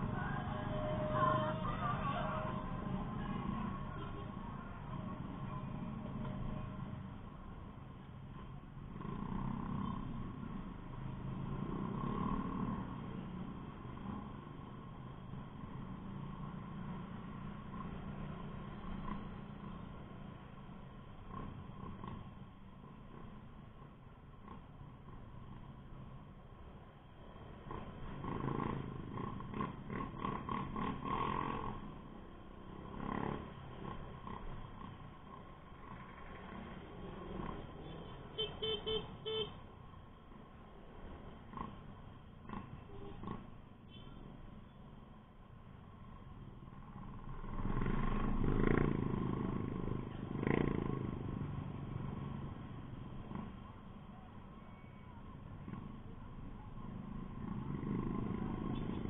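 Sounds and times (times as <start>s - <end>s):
road and wind noise: 0.0s - 59.0s.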